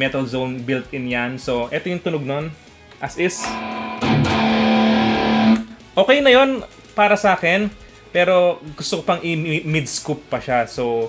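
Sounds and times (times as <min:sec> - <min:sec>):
distorted electric guitar chord: 0:03.2 - 0:05.9.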